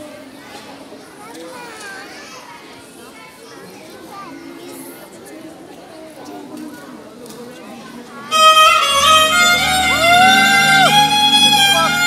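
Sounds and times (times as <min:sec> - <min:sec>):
children's voices: 0:00.0 - 0:08.3
crowd talking and calling out: 0:00.0 - 0:12.0.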